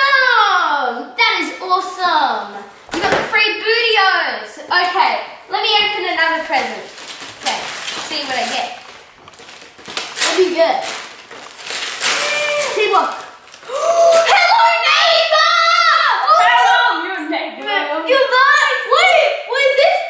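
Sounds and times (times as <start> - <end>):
children talking excitedly: 0.0 - 8.8, 12.0 - 20.0
wrapping paper rustling and tearing: 6.2 - 14.9.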